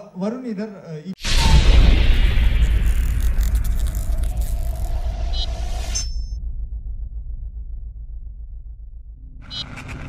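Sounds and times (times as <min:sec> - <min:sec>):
low rumble: 0:01.2 - 0:10.0.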